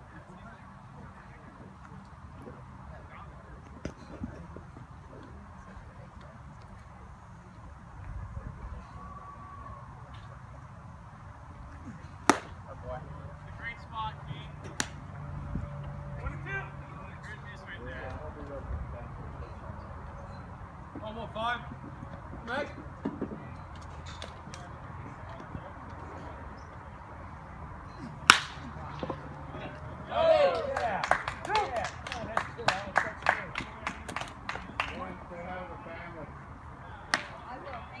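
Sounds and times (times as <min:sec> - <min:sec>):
faint voices of players: 0:00.0 - 0:38.0
baseball popping into leather mitt: 0:12.2 - 0:12.6, 0:28.2 - 0:29.2
bat cracking on ball: 0:12.2 - 0:12.6, 0:14.7 - 0:15.0, 0:28.2 - 0:29.2, 0:37.1 - 0:37.4
hand clapping: 0:28.3 - 0:28.6, 0:30.5 - 0:35.0
crowd shouting and cheering: 0:29.6 - 0:33.3.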